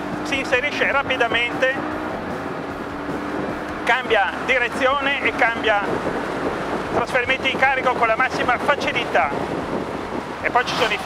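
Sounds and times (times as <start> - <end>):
car engine running: 0.0 - 11.0
road noise: 0.0 - 11.0
wind noise: 0.0 - 11.0.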